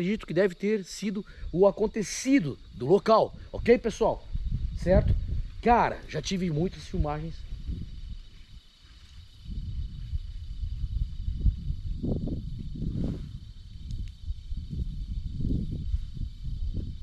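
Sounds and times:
wind gusting against microphone: 0.0 - 17.0.

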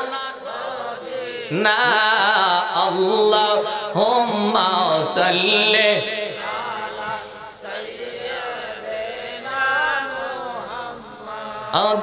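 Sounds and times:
man chanting into a microphone: 1.0 - 7.6, 8.5 - 12.0.

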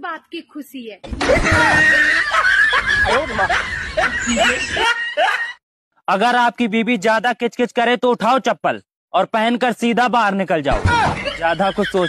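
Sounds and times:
canned laughter: 1.2 - 5.6, 11.1 - 12.0.

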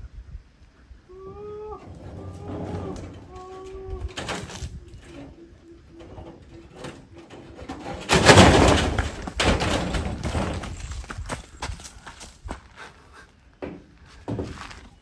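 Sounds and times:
dove cooing: 1.1 - 7.6.

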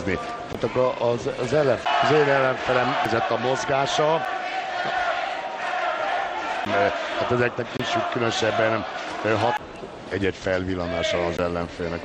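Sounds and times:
man speaking: 6.7 - 9.6.

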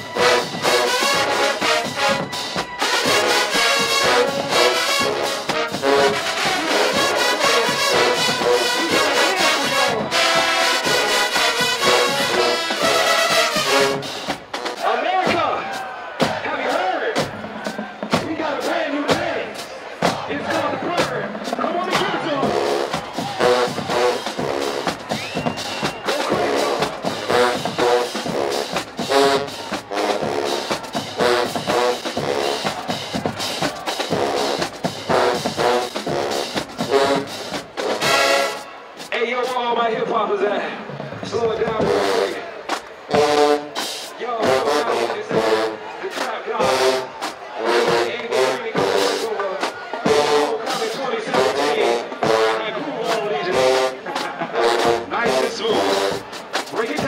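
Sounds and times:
marching band playing: 0.0 - 57.0
voices shouting and cheering: 0.0 - 57.0.

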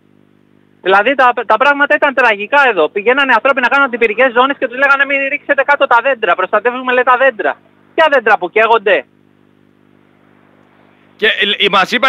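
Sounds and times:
telephone line hum and hiss: 0.0 - 12.0.

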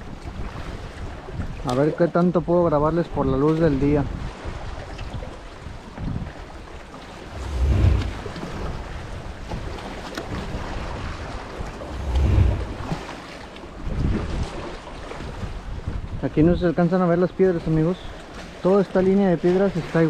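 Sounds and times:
wind rumbling on microphone: 0.0 - 1.7, 3.1 - 16.6
seawater washing on rocks: 7.0 - 14.6.

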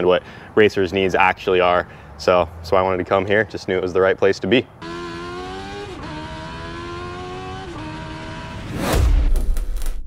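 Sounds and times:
race vehicle engine accelerating: 4.8 - 9.1.

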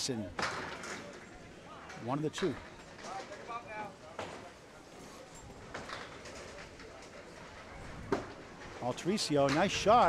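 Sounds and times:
faint voices in a hall: 0.0 - 9.4.

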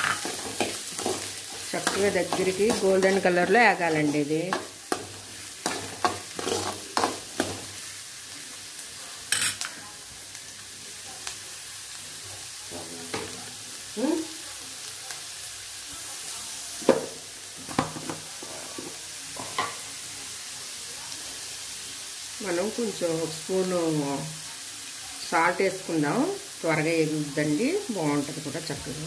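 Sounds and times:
steel spoon scraping pan: 0.0 - 7.6
onions sizzling in hot oil: 0.0 - 29.0.

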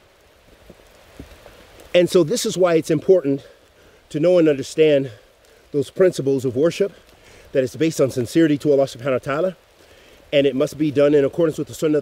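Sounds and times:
light rain hissing: 0.0 - 12.0
soft taps of raindrops: 0.0 - 12.0.

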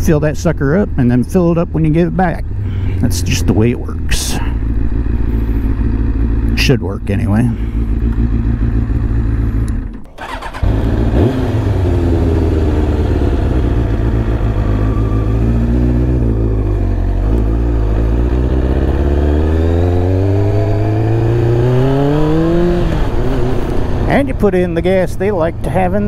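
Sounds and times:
motorcycle engine accelerating: 0.8 - 26.0.

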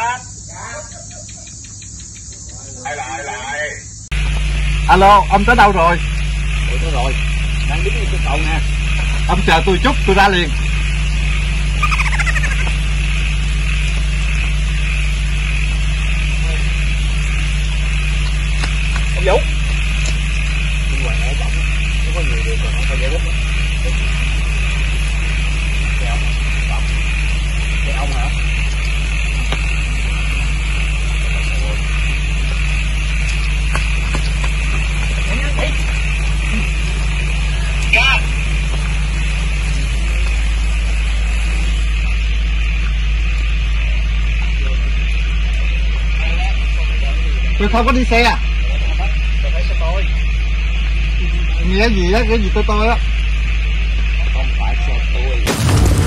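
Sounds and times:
low machine hum: 0.0 - 56.0.

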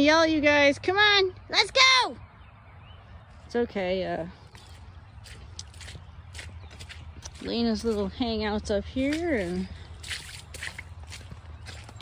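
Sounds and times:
footsteps on muddy leaf litter: 3.4 - 12.0.

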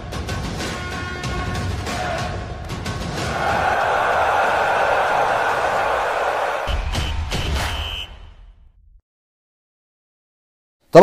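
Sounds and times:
crowd cheering effect: 3.2 - 8.4.

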